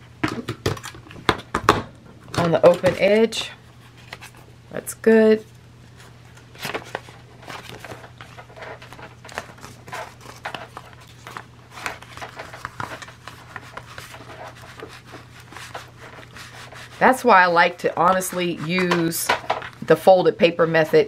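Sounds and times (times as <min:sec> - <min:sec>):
steady low hum: 0:00.0 - 0:21.0
paper rustling: 0:05.9 - 0:19.8.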